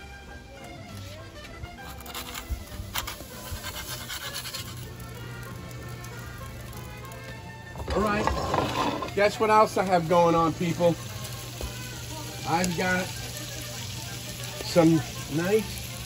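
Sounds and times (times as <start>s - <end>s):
quiet background music: 0.0s - 16.0s
clicks and scrapes: 1.8s - 4.8s, 7.8s - 9.2s
food sizzling in a pan: 2.2s - 16.0s.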